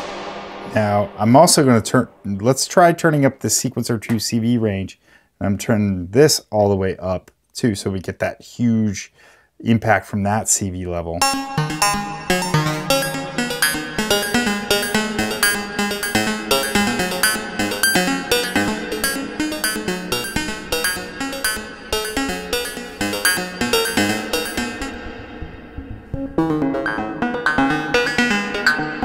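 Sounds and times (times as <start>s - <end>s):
synthesizer ringing notes: 11.2s - 29.0s.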